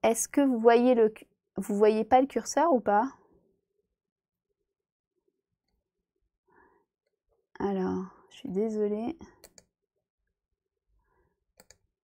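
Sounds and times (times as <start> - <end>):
computer mouse clicks: 9.4 - 9.7, 11.6 - 11.9.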